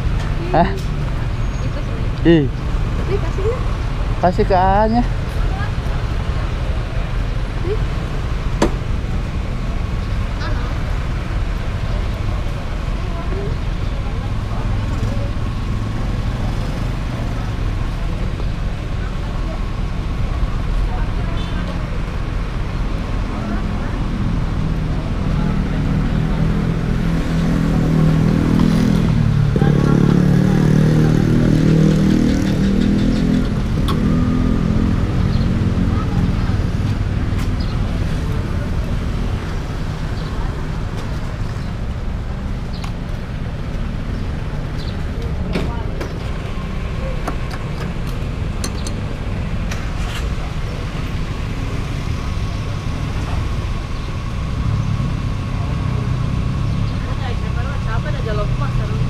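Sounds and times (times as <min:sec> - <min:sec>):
motorcycle engines idling: 0:00.0 - 0:34.0, 0:34.6 - 0:59.0.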